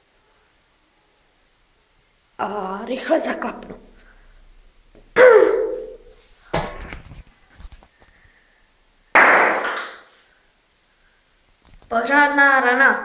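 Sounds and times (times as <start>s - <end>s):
knocks and pops: 6.5s - 7.1s, 9.2s - 10.0s
plastic capsule bursting with a bang: 9.2s - 10.0s.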